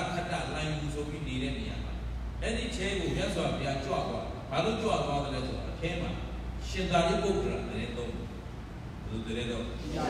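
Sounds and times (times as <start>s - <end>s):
person giving a sermon: 0.0s - 8.3s.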